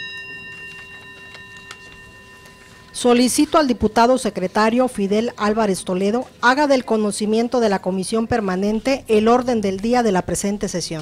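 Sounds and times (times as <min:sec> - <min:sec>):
bell ringing: 0:00.0 - 0:05.6.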